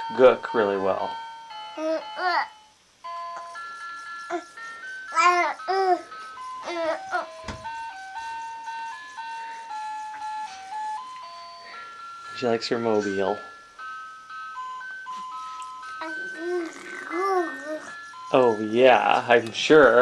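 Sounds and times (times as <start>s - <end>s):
crib mobile electronic lullaby: 0.0s - 20.0s
baby cooing and babbling: 1.8s - 2.6s, 4.3s - 4.5s, 5.1s - 7.4s, 15.9s - 18.0s.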